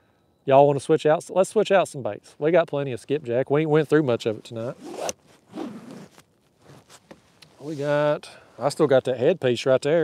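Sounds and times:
zip-like rustle: 4.4 - 8.2.

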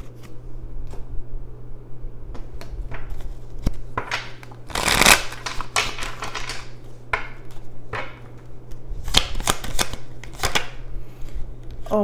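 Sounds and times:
cards being shuffled: 2.6 - 7.7, 8.3 - 11.8.

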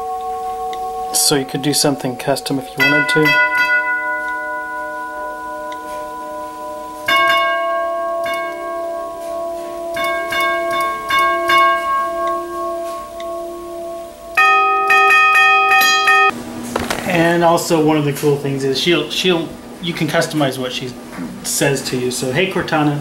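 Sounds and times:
tubular doorbell chime: 0.0 - 16.4.

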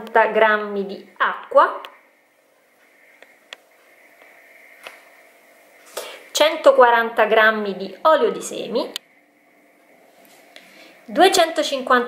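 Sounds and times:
faint high-pitched hum: 0.0 - 12.0.

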